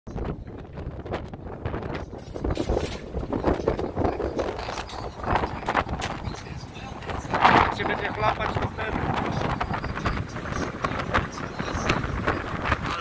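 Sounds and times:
choppy water against hull: 0.1 - 13.0
wind buffeting microphone: 0.1 - 13.0.

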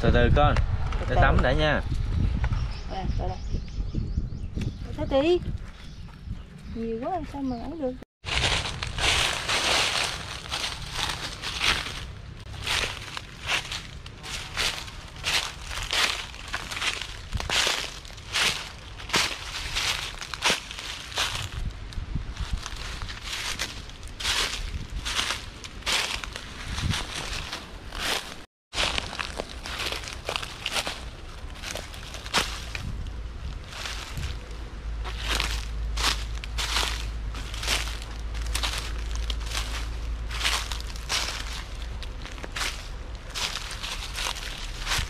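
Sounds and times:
footsteps crunching dry leaves: 8.2 - 45.0.

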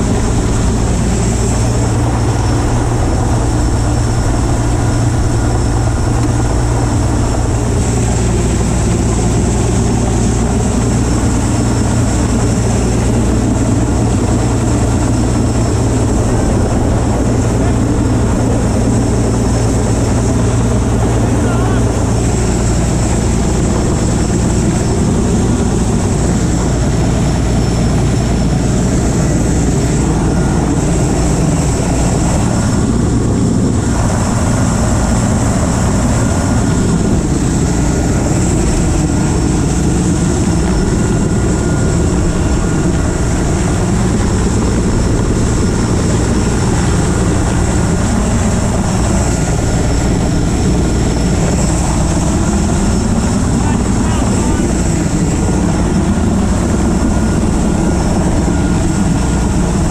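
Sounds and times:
helicopter rotor and engine: 0.0 - 59.9.

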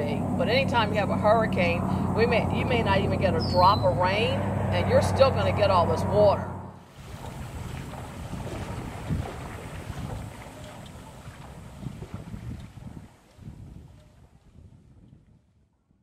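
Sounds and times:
water sloshing from wading: 0.0 - 14.7
wind noise on microphone: 0.0 - 16.0.

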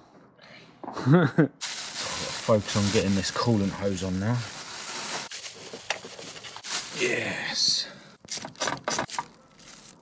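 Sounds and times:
plastic sheeting crinkling: 1.6 - 7.4, 8.5 - 10.0.

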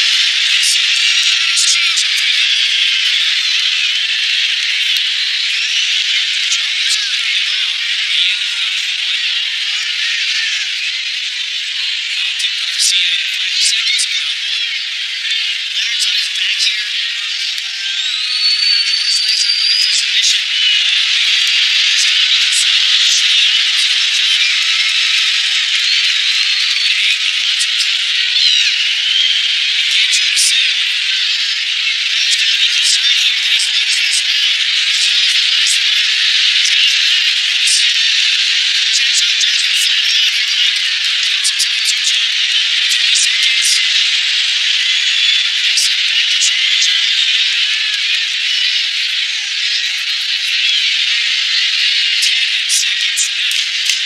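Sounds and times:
crowd cheering: 14.7 - 54.0
shrill whistles: 16.0 - 49.2
scattered claps: 18.7 - 48.4, 51.2 - 54.0.

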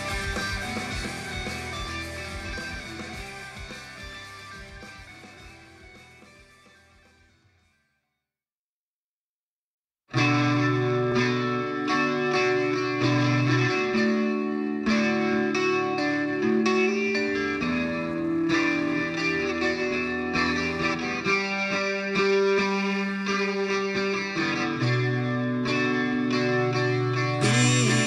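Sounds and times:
guitar-led rock music: 0.0 - 7.4, 10.1 - 28.0.

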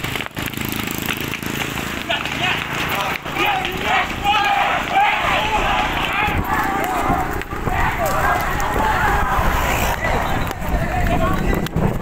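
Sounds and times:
people shouting and yelling: 1.8 - 12.0.

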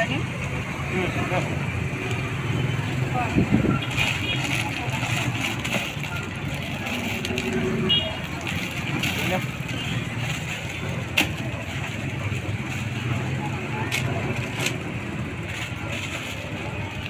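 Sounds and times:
street noise: 0.0 - 17.0
bags rustling: 3.7 - 13.1, 13.9 - 17.0.

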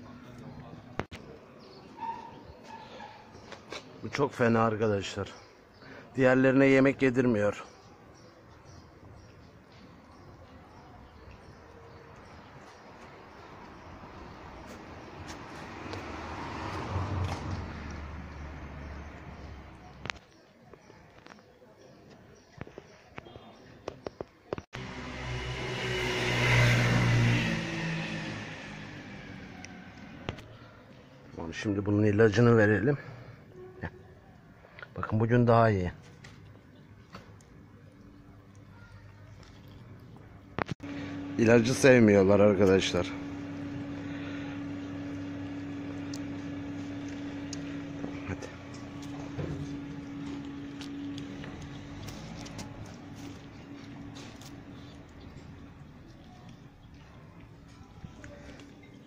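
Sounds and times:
motor vehicle passing by: 11.4 - 20.2, 24.8 - 30.8, 39.4 - 59.0.

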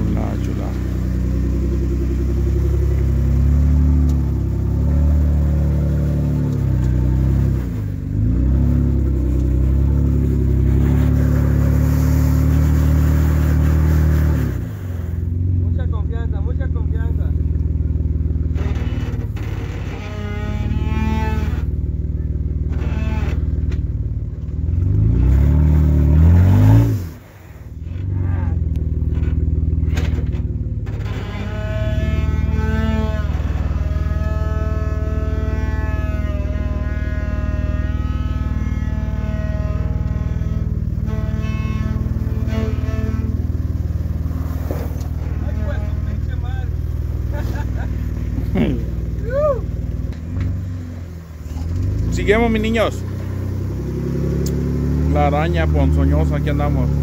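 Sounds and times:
engine revving under load: 0.0 - 57.0.

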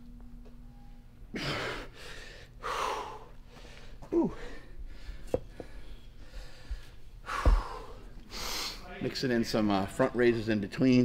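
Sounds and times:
man grunting: 4.1 - 4.6.

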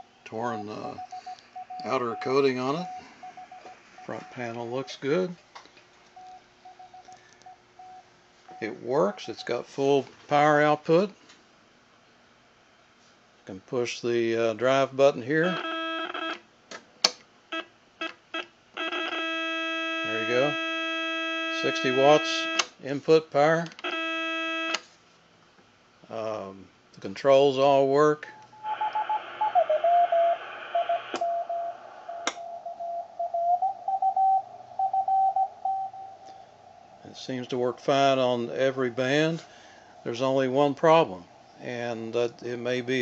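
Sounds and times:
morse code beat tone: 0.0 - 5.1, 18.8 - 22.6
receiver hiss: 0.0 - 5.4, 28.2 - 32.8
steady held tone: 0.0 - 5.4, 28.3 - 43.0
short beeps: 0.6 - 5.0, 30.8 - 36.4.

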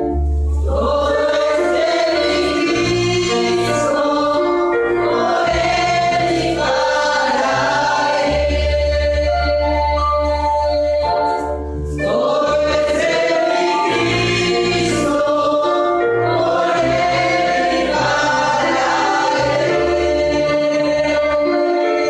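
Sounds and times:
instrumental accompaniment with bass: 0.0 - 22.0
group singing gospel song: 0.5 - 22.0.

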